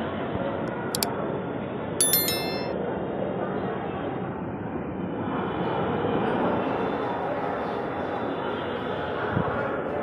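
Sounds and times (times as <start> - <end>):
notification bell ding: 2.0 - 2.7
platform background noise: 2.0 - 2.7.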